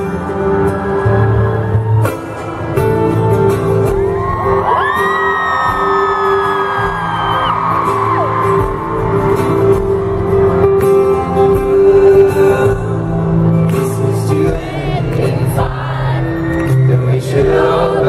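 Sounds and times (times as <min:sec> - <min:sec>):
audience screaming and whooping: 0:00.0 - 0:11.6, 0:14.2 - 0:18.0
acoustic guitar music: 0:00.0 - 0:18.0.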